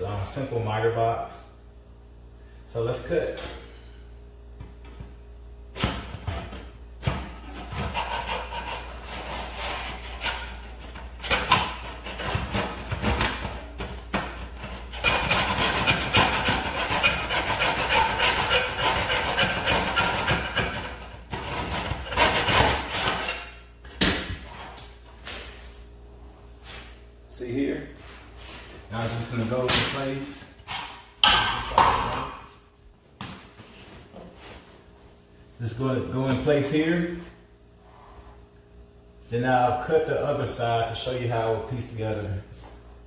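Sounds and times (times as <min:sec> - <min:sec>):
hand saw cutting wood: 0:07.4 - 0:13.6, 0:14.2 - 0:23.5.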